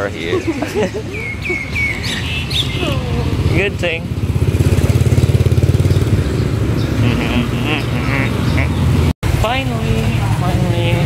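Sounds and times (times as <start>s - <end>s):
motor scooter engine running: 2.9s - 7.8s.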